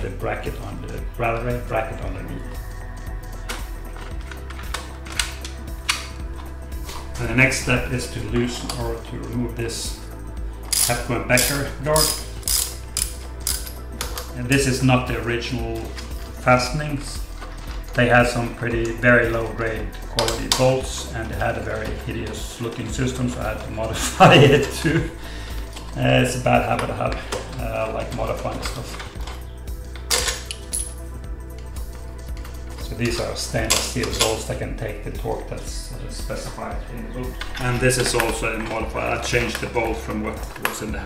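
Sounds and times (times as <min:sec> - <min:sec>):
ratchet wrench clicking: 0:10.7 - 0:14.3
metal tool clinking on bolt: 0:30.0 - 0:31.0.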